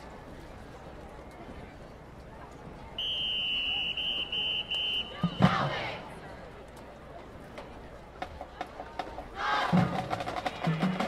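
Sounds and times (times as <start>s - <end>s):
whistle blasts: 3.0s - 5.9s.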